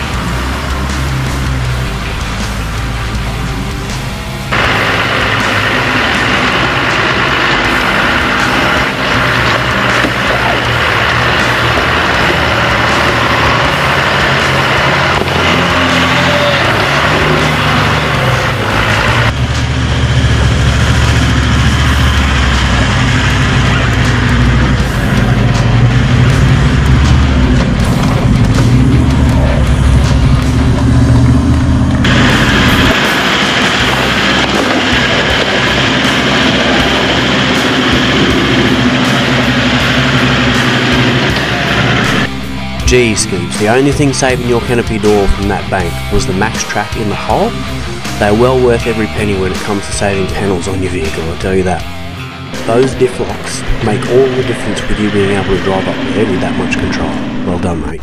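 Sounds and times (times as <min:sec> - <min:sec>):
background music: 0:00.0 - 0:58.0
off-road engines working hard: 0:00.0 - 0:58.0.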